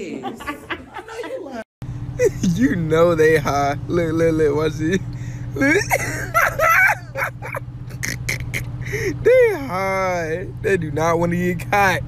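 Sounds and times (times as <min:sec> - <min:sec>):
car idling hum: 0:01.8 - 0:12.0
person laughing: 0:02.2 - 0:02.8, 0:05.0 - 0:09.7.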